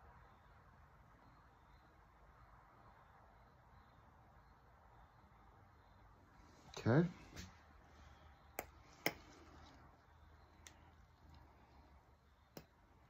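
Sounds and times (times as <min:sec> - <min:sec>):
room hum: 0:00.0 - 0:13.0.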